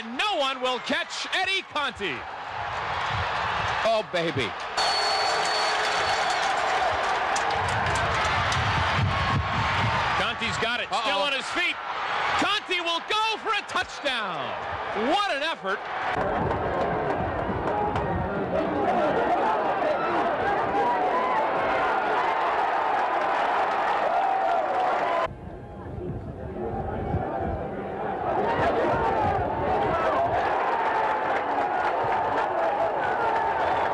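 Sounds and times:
stadium crowd shouting and cheering: 0.0 - 33.9.

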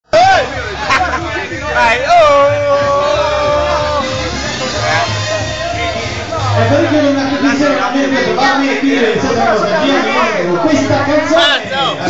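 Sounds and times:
background chatter: 0.0 - 12.0
loud voices speaking: 0.0 - 12.0
person shouting: 2.1 - 4.2.

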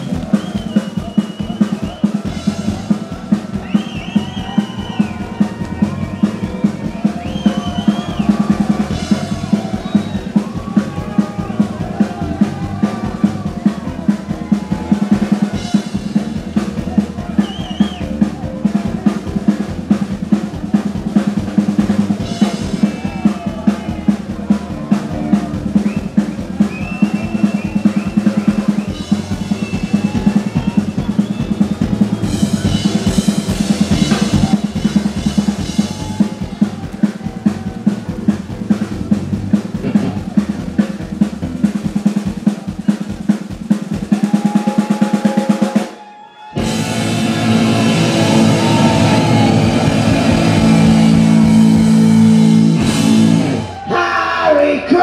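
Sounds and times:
fast drum beat: 0.0 - 46.0, 46.6 - 55.0
punk rock band playing: 0.0 - 54.2
long held guitar notes: 46.6 - 53.8.

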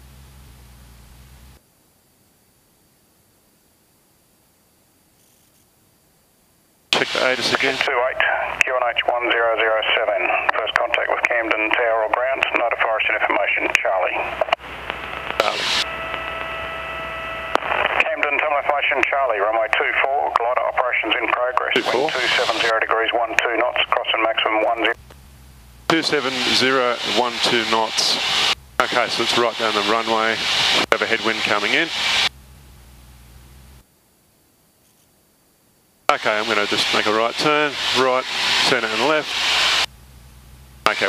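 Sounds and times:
speech over aircraft radio: 7.0 - 14.6, 15.3 - 15.8, 17.7 - 25.0, 25.9 - 32.0, 36.1 - 39.4
steady pitched tone: 14.2 - 17.9.

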